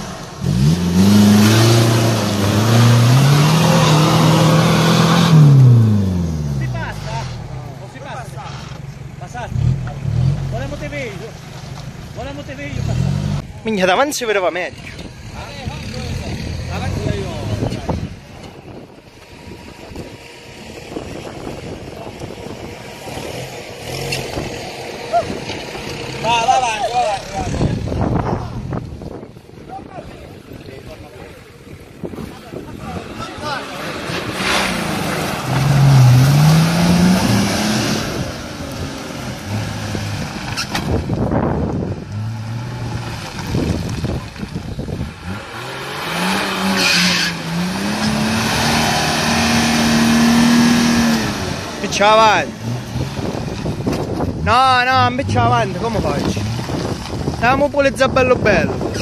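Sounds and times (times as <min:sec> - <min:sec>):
engine revving under load: 0:00.0 - 0:07.6, 0:12.6 - 0:13.5, 0:19.8 - 0:29.2, 0:32.8 - 0:59.0.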